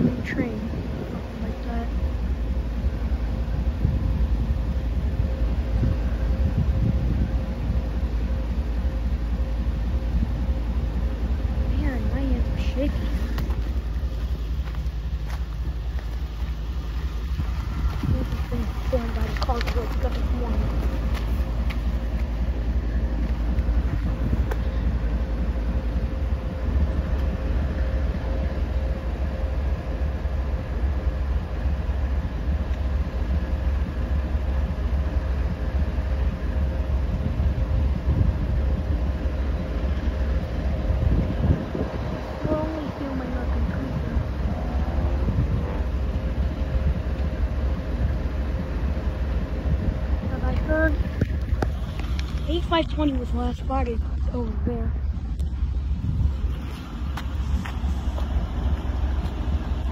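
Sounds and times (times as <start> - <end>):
diesel locomotives rumbling: 0.0 - 59.9
wind buffeting microphone: 0.0 - 59.9.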